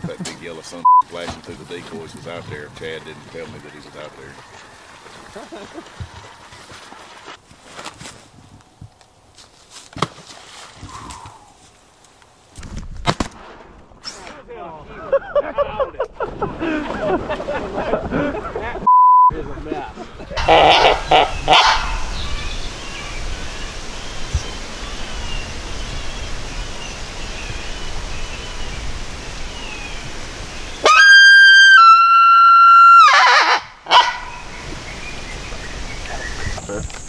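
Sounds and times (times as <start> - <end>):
people talking: 0.0 - 4.4, 14.2 - 16.1, 17.9 - 21.0, 36.0 - 36.9
censor bleep: 0.8 - 1.0, 18.9 - 19.4
laughter: 5.3 - 6.0, 14.9 - 21.2.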